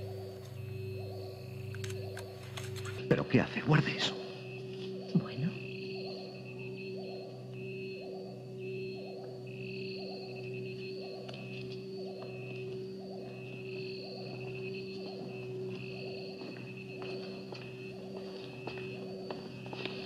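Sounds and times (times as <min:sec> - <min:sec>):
high wavering tones: 0:00.0 - 0:16.4
electronic drone: 0:00.0 - 0:20.0
soft electronic pulse: 0:00.0 - 0:20.0.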